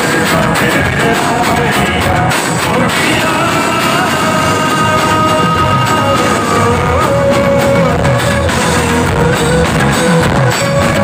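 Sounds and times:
live rock band music: 0:00.0 - 0:11.0.

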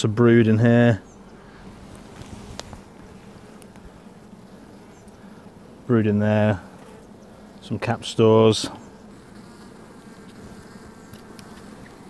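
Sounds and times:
honey bees buzzing: 0:00.0 - 0:12.0
wind rumble on microphone: 0:01.8 - 0:03.2.

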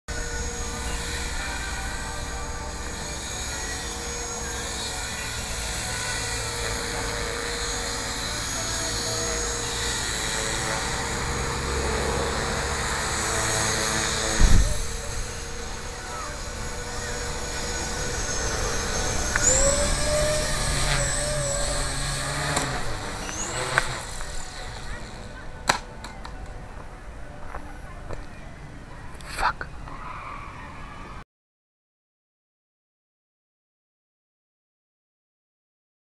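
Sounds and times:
rc helicopter whine: 0:00.1 - 0:26.6
wind rumble on microphone: 0:14.2 - 0:15.4.

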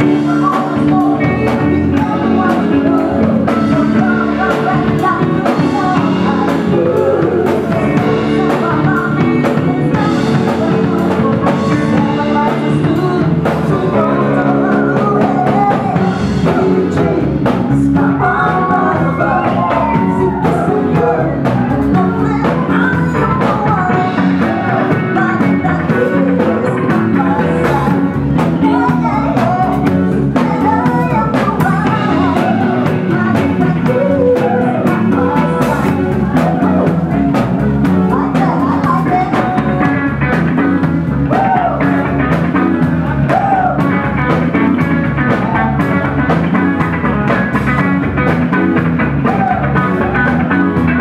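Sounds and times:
drum kit beat: 0:00.0 - 0:51.0
electric guitar: 0:00.0 - 0:51.0
live rock and roll band: 0:00.0 - 0:51.0
person singing: 0:00.0 - 0:51.0.

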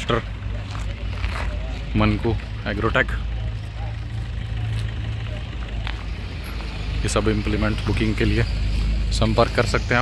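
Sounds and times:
faint voices: 0:00.0 - 0:10.0
low engine drone: 0:00.0 - 0:10.0.

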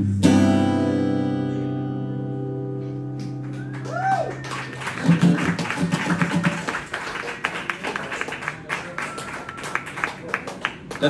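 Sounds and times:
acoustic guitar strummed chords: 0:00.0 - 0:03.5.

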